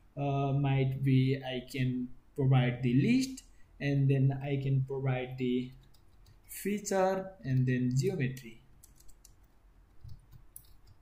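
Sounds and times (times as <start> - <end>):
faint keyboard typing: 5.4 - 6.6, 7.4 - 11.0.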